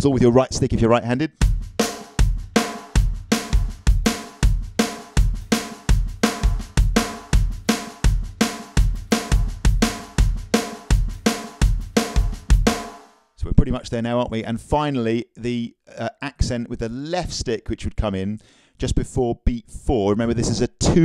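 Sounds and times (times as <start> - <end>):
bass drum pattern: 1.3 - 13.0
snare drum roll: 1.5 - 13.1.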